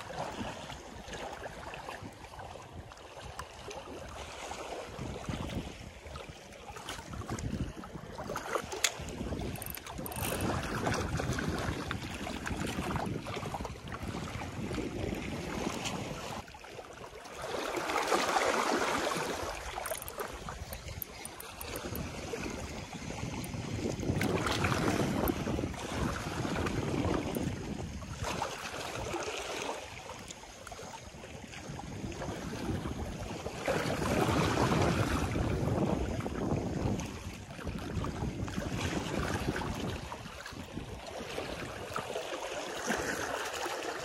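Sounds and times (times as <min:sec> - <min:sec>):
sea water washing: 0:00.0 - 0:44.0
wind buffeting microphone: 0:04.9 - 0:16.5, 0:19.0 - 0:29.2, 0:31.0 - 0:42.1.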